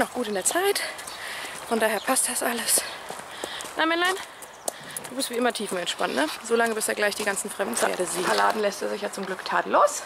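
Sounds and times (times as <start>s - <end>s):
horse hooves on dirt: 0.0s - 10.0s.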